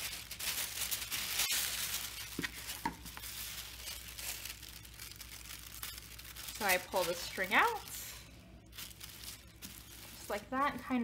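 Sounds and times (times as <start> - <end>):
plastic tablecloth crinkling: 0.0 - 11.0.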